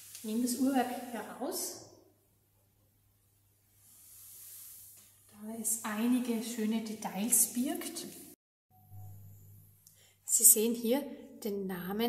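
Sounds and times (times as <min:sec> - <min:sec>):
soft rustle of gloved hands: 0:03.2 - 0:05.4.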